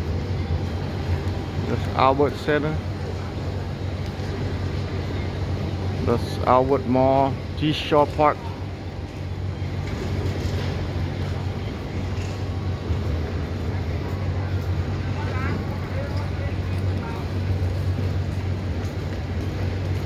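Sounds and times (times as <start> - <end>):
passers-by voices: 0.0 - 20.0
road traffic hum: 0.0 - 20.0.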